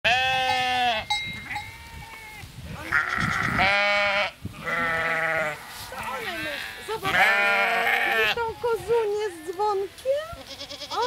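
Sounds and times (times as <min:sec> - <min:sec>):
sheep bleating: 0:00.0 - 0:11.0.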